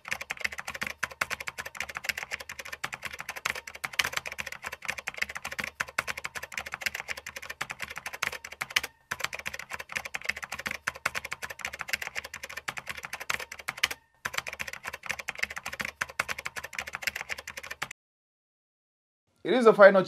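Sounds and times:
fast keyboard key clicks: 0.0s - 17.9s.

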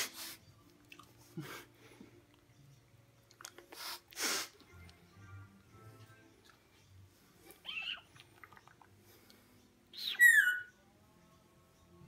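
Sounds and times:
parrot calls: 7.6s - 8.1s, 9.9s - 10.8s.

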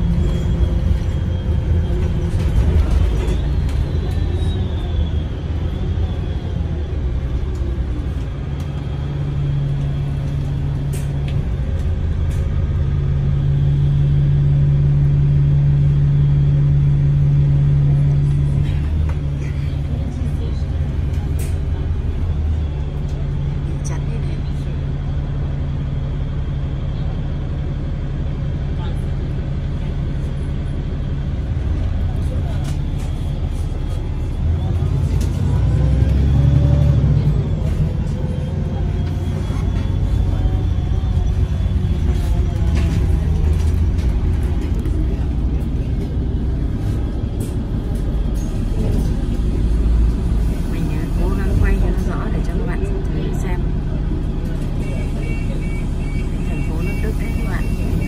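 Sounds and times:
bus engine hum: 0.0s - 58.0s
road rumble: 0.0s - 58.0s.

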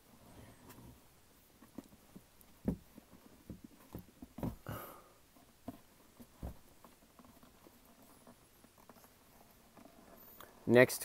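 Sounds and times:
leather boots tapping and rustling: 0.2s - 10.6s.

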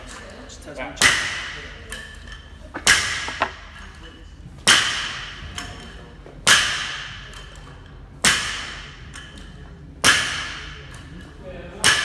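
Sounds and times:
barbell striking rubber floor: 2.8s - 3.8s.

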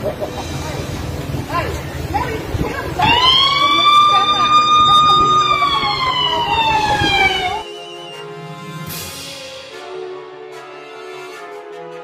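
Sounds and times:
street noise: 0.0s - 11.9s
siren wailing: 3.0s - 8.6s.

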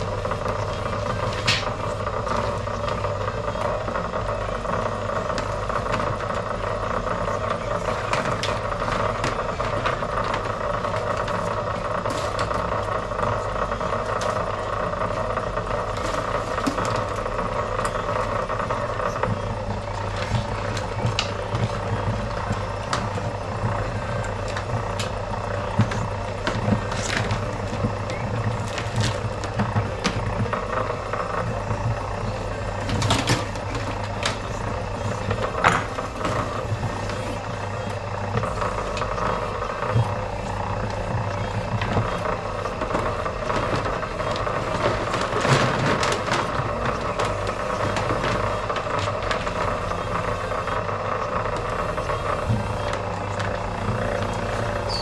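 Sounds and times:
machine motor humming: 0.0s - 55.0s.

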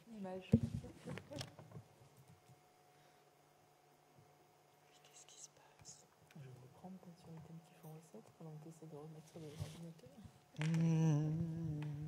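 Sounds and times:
faint room hum: 0.0s - 12.0s
faint whispering: 4.8s - 6.1s.

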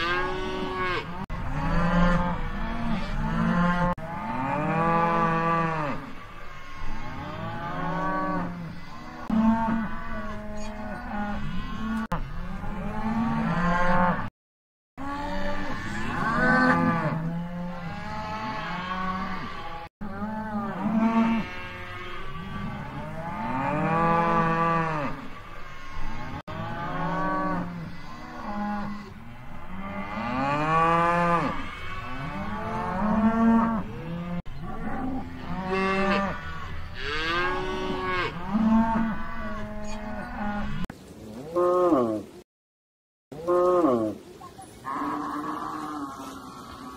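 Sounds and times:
cattle mooing: 0.0s - 14.3s, 15.0s - 40.8s, 44.8s - 46.9s.

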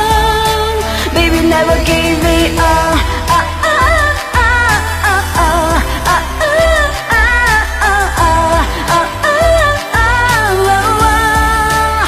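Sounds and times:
backing track with bass beat: 0.0s - 12.0s
woman singing pop song: 0.0s - 12.0s.

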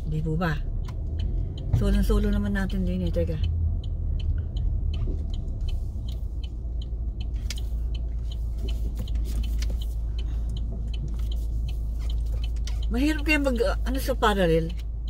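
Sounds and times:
car engine and road rumble: 0.0s - 15.0s
turn signal ticking: 0.0s - 15.0s.

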